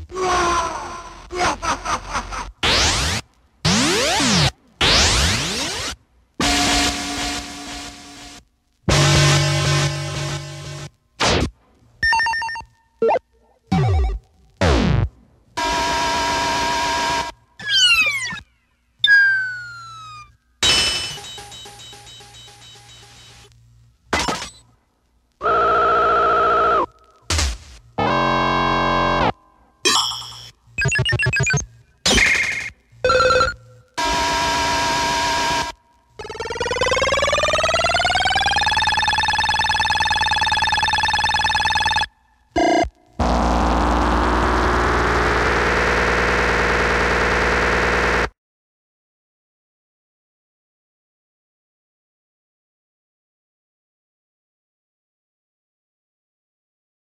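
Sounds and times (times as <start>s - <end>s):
buzzy electronic tone rising: 43.2s - 48.3s.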